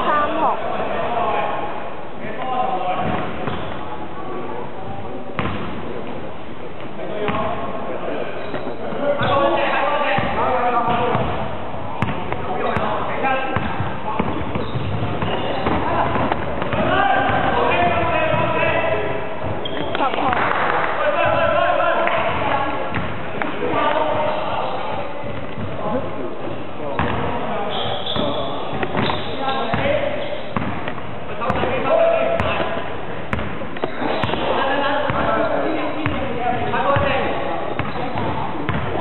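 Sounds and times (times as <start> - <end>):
players shouting and talking: 0.0 - 39.0
basketball bouncing on hardwood floor: 13.6 - 17.5, 37.8 - 39.0.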